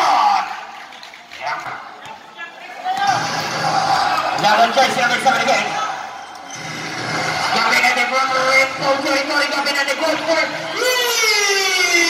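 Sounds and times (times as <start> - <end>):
crowd noise: 0.0 - 12.0
sports commentary talk: 1.3 - 6.3, 7.4 - 12.0.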